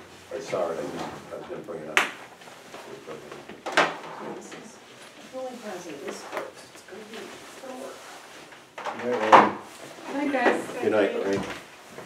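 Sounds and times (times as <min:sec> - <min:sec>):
people talking indistinctly: 0:04.2 - 0:08.1, 0:09.0 - 0:11.5.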